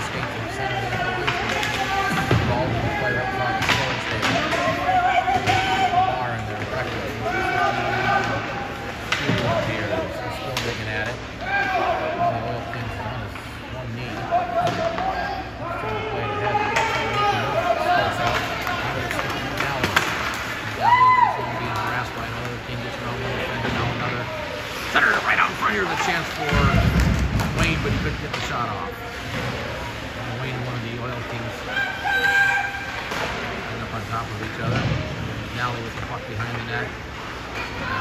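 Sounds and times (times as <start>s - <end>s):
players and spectators calling out: 0.0s - 27.0s, 31.2s - 34.2s.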